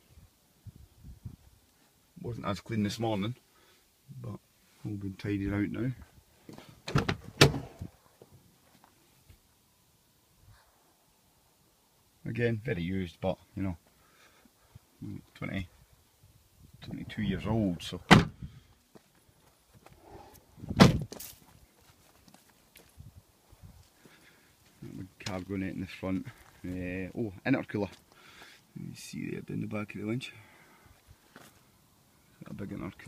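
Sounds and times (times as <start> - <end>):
car door slam: 6.9 - 7.8, 18.1 - 18.4, 20.8 - 21.0
faint scuffs and light knocks: 20.9 - 25.5.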